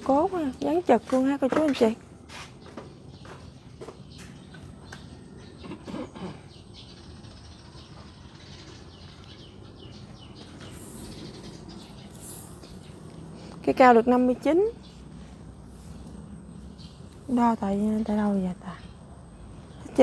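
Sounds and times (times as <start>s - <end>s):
bird chirps: 2.6s - 15.1s.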